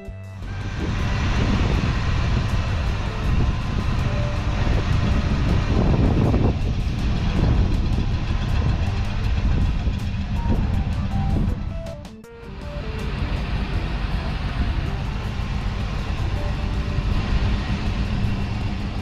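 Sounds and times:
engine idling: 0.0s - 19.0s
faint music: 0.0s - 19.0s.

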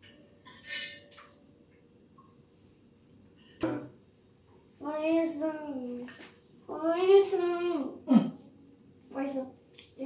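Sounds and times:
metal spoon scraping bowl: 0.4s - 1.2s.

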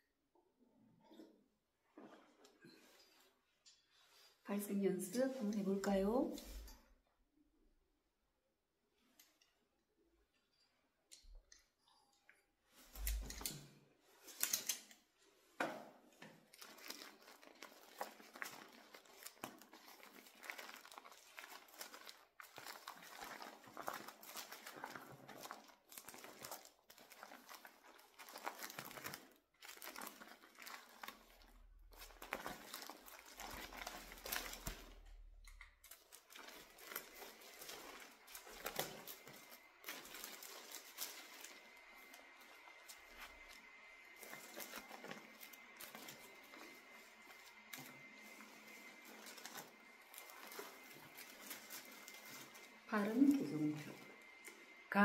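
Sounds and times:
rustling and crinkling close up: 0.9s - 7.0s, 8.9s - 55.0s.

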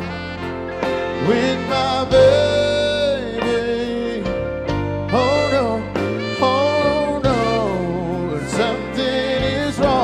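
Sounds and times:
saxophone: 0.0s - 10.0s
soul band playing: 0.0s - 10.0s
man singing: 1.1s - 10.0s.

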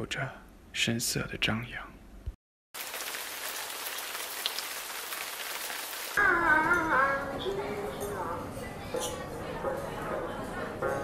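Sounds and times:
rain falling: 2.8s - 6.2s.

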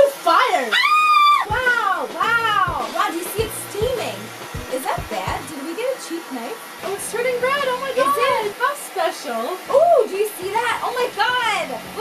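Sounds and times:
propane torch hissing: 0.0s - 12.0s
woman squealing: 0.7s - 2.8s
background music: 1.5s - 5.8s.

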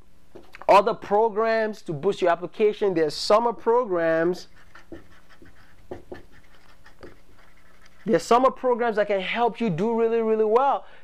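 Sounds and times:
faint steady hum: 0.0s - 11.0s
marker writing on whiteboard: 4.0s - 8.6s.

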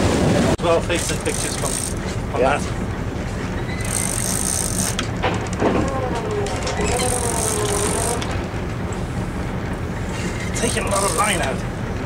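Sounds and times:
boat engine droning: 0.0s - 12.0s
fishing reel drag whining: 0.9s - 2.1s, 3.6s - 5.1s, 6.5s - 8.4s, 10.1s - 11.5s.

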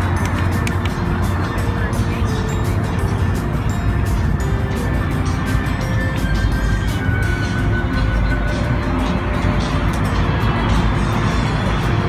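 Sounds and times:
background music: 0.0s - 12.0s
low engine rumble: 0.0s - 12.0s.

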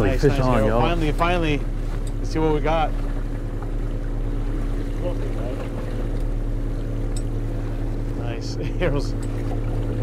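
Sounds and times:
boat motor humming: 0.0s - 10.0s.

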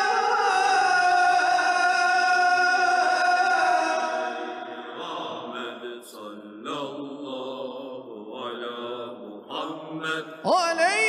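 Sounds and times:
devotional chanting: 0.0s - 11.0s.

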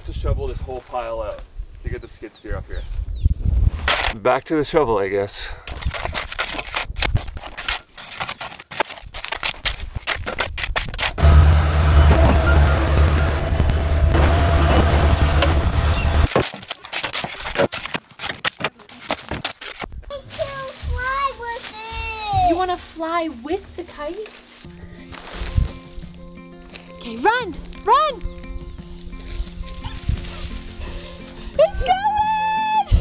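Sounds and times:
skid steer engine droning: 11.2s - 16.3s.

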